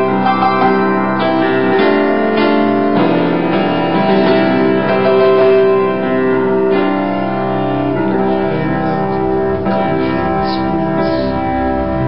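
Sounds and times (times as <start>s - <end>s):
piano playing held chords: 0.0s - 12.0s.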